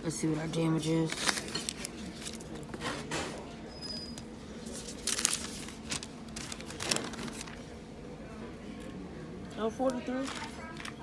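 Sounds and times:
low background hum: 0:00.0 - 0:11.0
paper receipt crinkling: 0:00.8 - 0:02.7, 0:04.6 - 0:07.7, 0:09.8 - 0:11.0.

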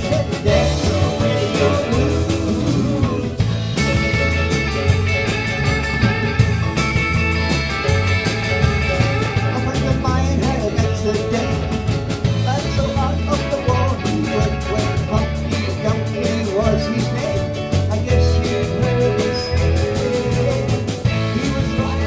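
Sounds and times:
bass guitar: 0:00.0 - 0:22.0
drum kit steady beat: 0:00.0 - 0:22.0
electric guitars: 0:00.0 - 0:22.0.

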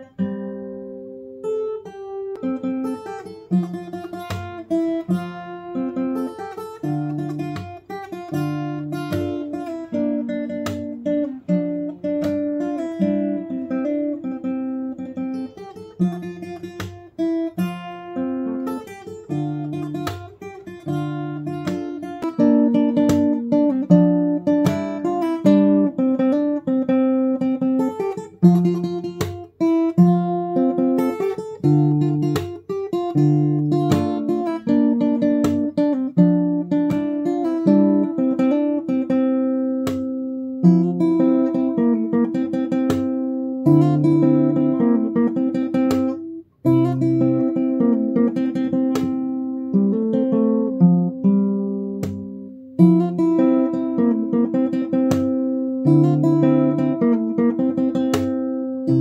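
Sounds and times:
fingerstyle acoustic guitar: 0:00.0 - 0:59.0.

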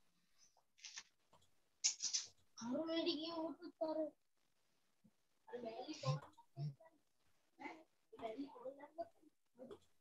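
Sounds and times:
child's voice: 0:02.6 - 0:04.2, 0:05.5 - 0:06.9, 0:07.6 - 0:09.8.

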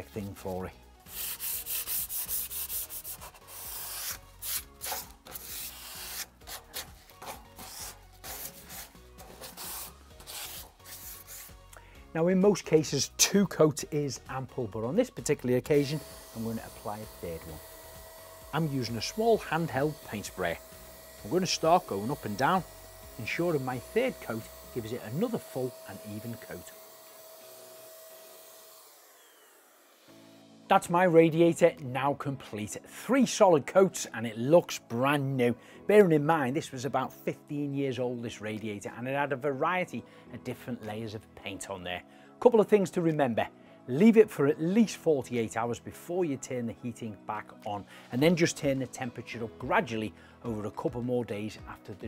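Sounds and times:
sanding pad rubbing metal radiator: 0:01.1 - 0:11.6
electric paint sprayer humming: 0:01.2 - 0:11.8, 0:15.7 - 0:30.6.

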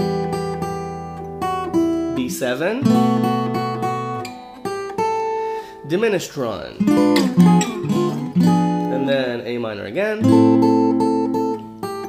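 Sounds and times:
fingerpicked acoustic guitar: 0:00.0 - 0:12.0.

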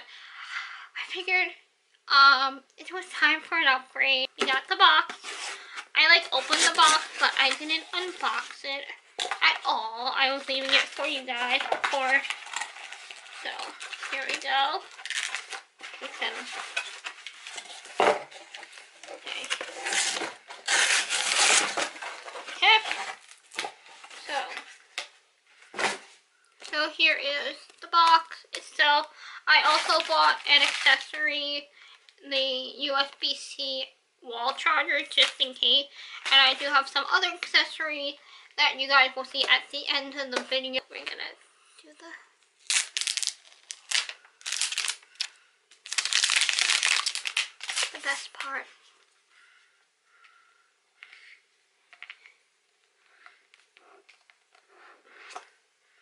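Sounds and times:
plastic shrink wrap crinkling: 0:04.3 - 0:26.8, 0:27.6 - 0:31.5, 0:42.5 - 0:48.7.

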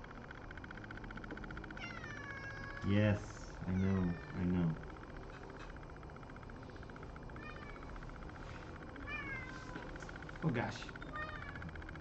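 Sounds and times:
cat meowing: 0:03.6 - 0:04.5, 0:09.0 - 0:09.9.

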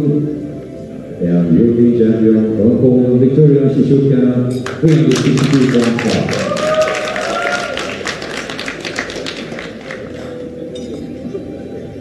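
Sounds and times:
audience applauding: 0:04.7 - 0:10.5.

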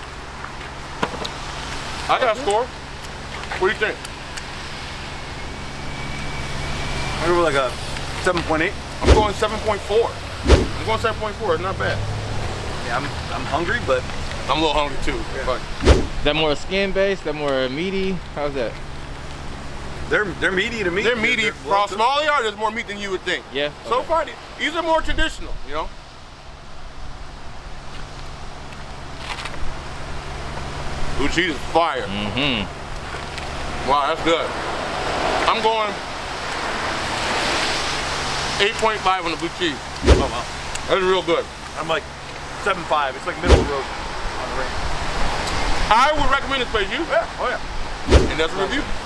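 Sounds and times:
low rumble and hiss: 0:00.0 - 0:34.7, 0:37.9 - 0:49.0
traffic engine hum: 0:00.0 - 0:49.0.

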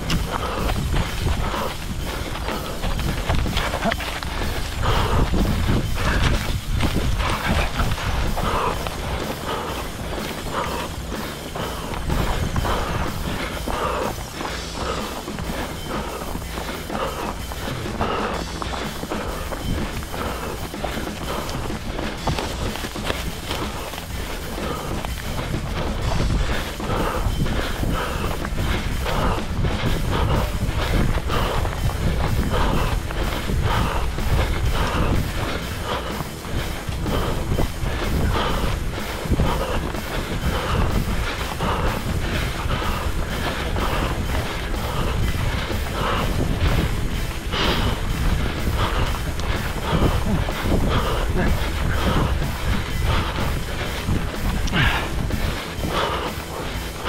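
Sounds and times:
running footsteps: 0:00.0 - 0:57.0.

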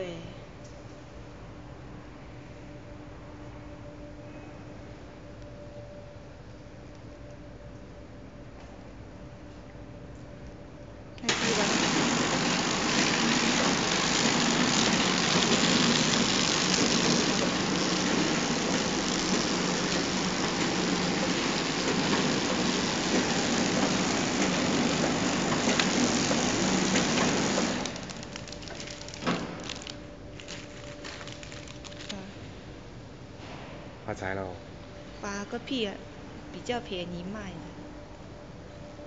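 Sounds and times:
wrapping machine running: 0:11.2 - 0:32.6.

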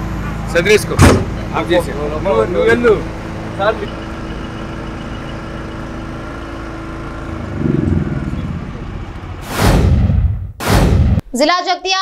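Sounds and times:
van engine idling: 0:00.0 - 0:09.4.

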